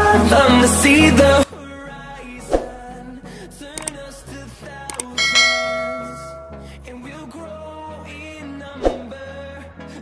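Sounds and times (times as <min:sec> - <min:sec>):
short clicks: 0:03.8 - 0:04.0, 0:04.9 - 0:05.2
notification bell chime: 0:05.2 - 0:06.7.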